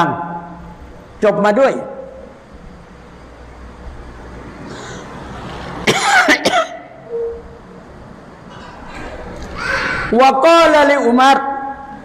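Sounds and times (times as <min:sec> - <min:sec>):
elderly man coughing: 0:05.8 - 0:06.9.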